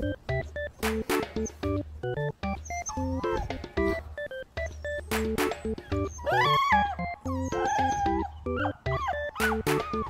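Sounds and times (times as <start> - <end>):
light background music: 0.0 - 10.0
puppies whining: 1.2 - 10.0.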